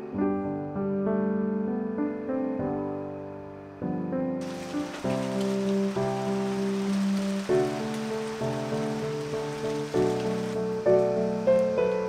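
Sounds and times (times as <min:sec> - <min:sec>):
soft background music: 0:00.0 - 0:12.0
steady rain falling: 0:04.4 - 0:12.0.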